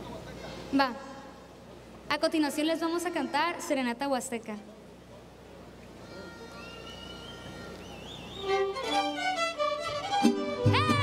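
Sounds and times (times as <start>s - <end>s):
mariachi band playing: 6.0s - 11.0s
wavering violin melody: 8.4s - 11.0s.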